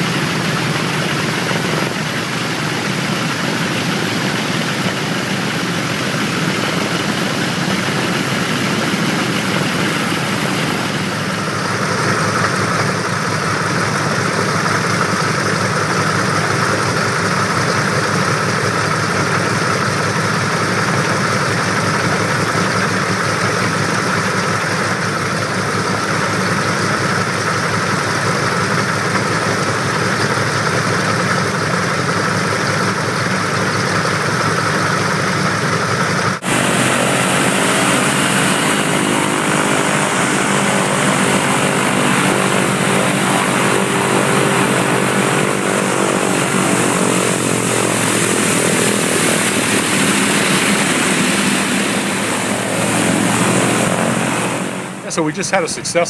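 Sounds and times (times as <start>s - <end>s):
radial aircraft engines running: 0.0s - 56.0s.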